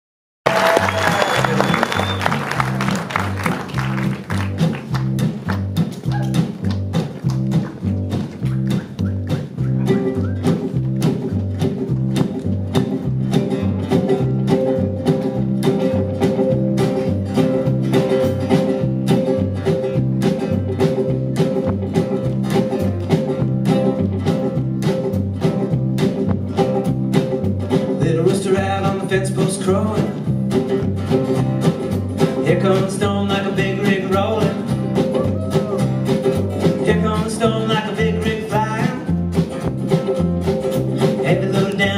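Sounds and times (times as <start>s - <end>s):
audience applause: 0.4s - 8.6s
upright bass: 0.5s - 41.9s
acoustic guitar strumming: 1.1s - 41.9s.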